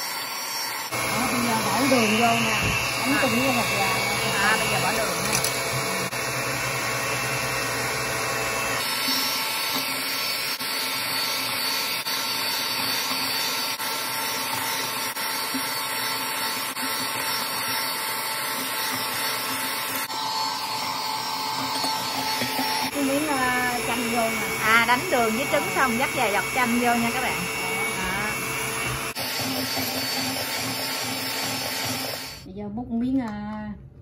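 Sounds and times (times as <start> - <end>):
electric hand mixer whisking: 0.0 - 32.5.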